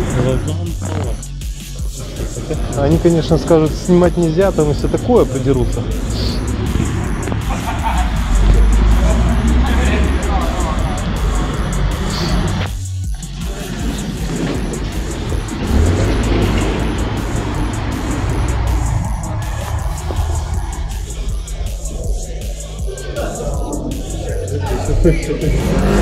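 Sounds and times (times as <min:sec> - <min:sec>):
music: 0:00.0 - 0:26.0
voices: 0:00.0 - 0:26.0
cars passing on street: 0:01.8 - 0:26.0.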